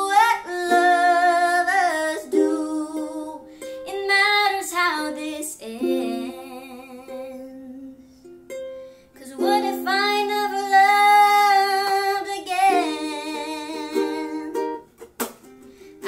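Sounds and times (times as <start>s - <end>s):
girl singing: 0.0s - 8.3s, 9.1s - 14.9s
ukulele playing: 0.0s - 16.0s.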